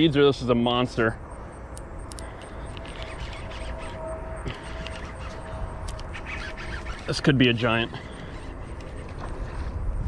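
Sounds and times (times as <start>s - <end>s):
fishing reel whirring: 2.2s - 9.8s.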